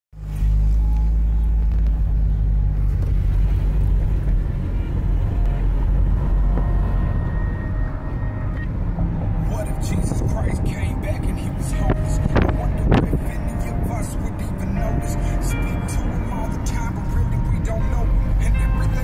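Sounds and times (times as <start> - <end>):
car road rumble: 0.1 - 19.0
rap music on car stereo: 0.2 - 19.0.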